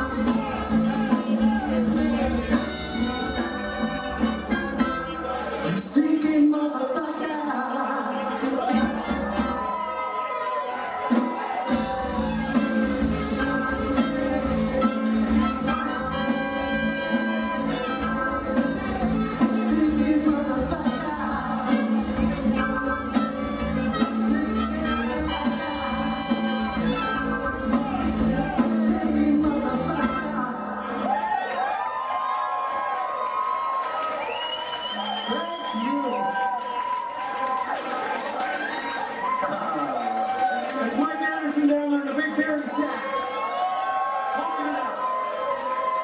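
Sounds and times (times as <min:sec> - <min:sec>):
sustained bass line: 0:00.0 - 0:05.4, 0:11.7 - 0:30.7
live band playing: 0:00.0 - 0:07.2, 0:08.3 - 0:31.2.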